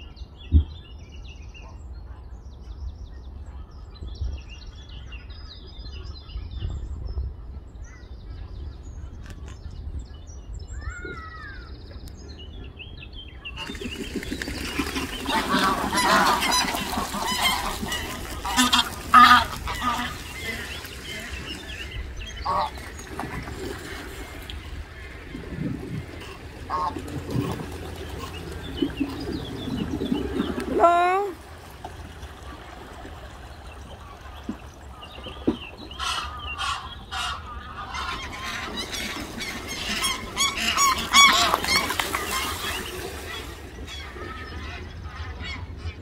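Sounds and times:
geese honking: 14.7s - 23.0s, 26.0s - 31.4s, 36.0s - 45.7s.

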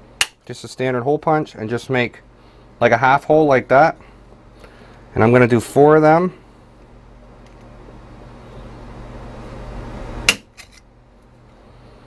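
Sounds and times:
sharp metallic snap: 0.2s - 0.5s, 10.3s - 10.7s.

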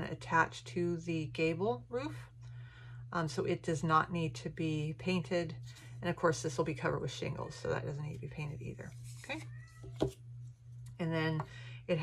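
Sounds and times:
wooden piece knocking on surface: 9.9s - 10.2s.

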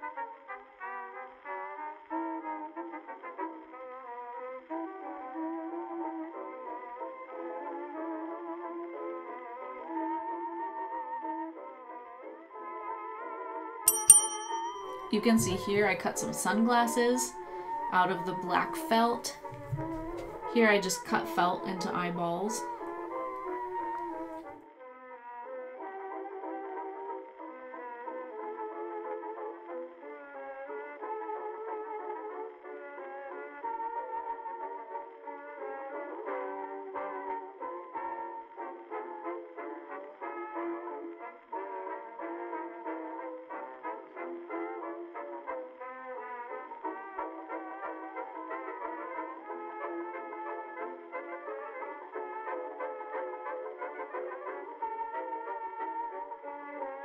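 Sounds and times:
instrumental background music: 13.9s - 31.1s.

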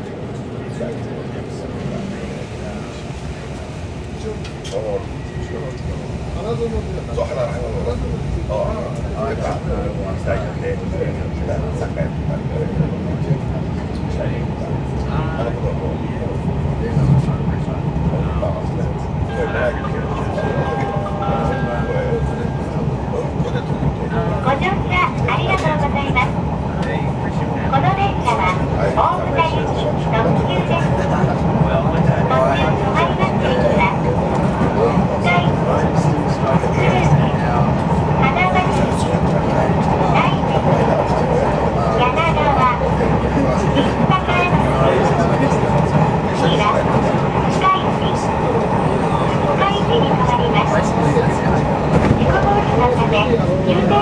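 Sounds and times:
people talking: 0.0s - 54.0s
train rumbling: 0.0s - 54.0s.

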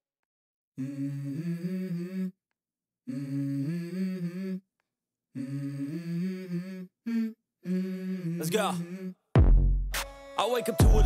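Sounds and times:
hummed vocal melody: 0.8s - 2.4s, 3.0s - 4.7s, 5.3s - 9.3s.

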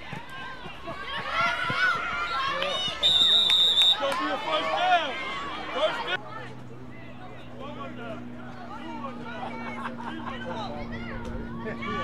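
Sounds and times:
referee's whistle blast: 3.0s - 4.0s.

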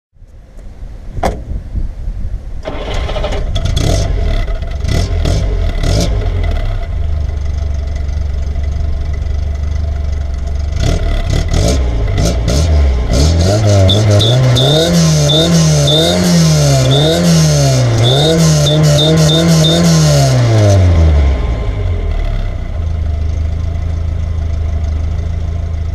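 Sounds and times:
car engine starting and idling: 1.9s - 25.9s
engine revving: 2.7s - 7.4s, 10.7s - 22.9s.

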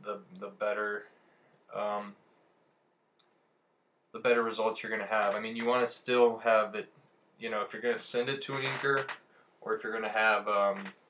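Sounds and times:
faint click: 3.2s - 3.4s.

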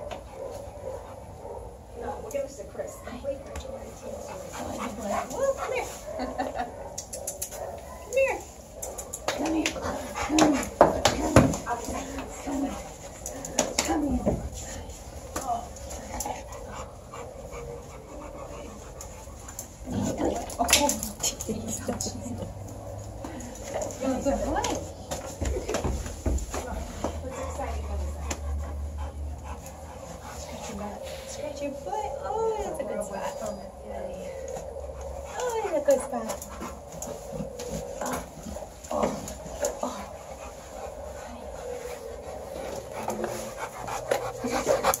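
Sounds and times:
dog panting: 0.0s - 45.0s.

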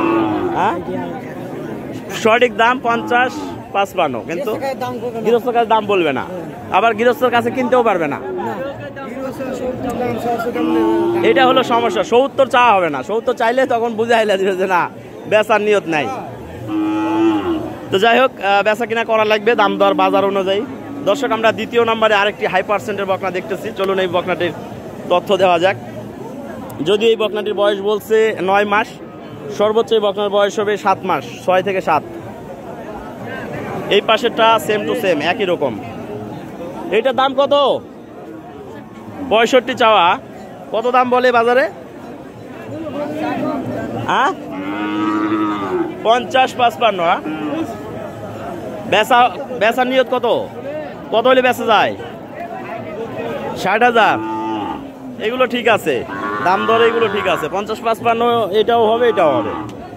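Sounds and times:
cow mooing: 0.0s - 0.9s, 2.8s - 3.6s, 10.4s - 12.1s, 16.4s - 17.9s, 44.3s - 46.0s, 47.1s - 47.8s, 54.0s - 55.0s, 56.0s - 57.7s, 58.9s - 59.8s.

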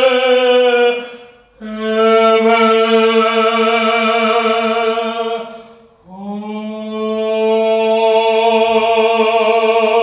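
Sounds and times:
man singing chant-like: 0.0s - 10.0s
breath: 1.0s - 1.5s, 5.4s - 6.0s.

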